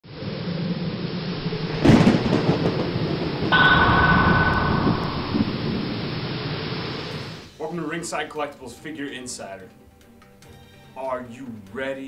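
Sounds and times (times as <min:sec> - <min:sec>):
sharp hit: 0:03.5 - 0:06.6
bright hiss with high tone: 0:03.6 - 0:06.5.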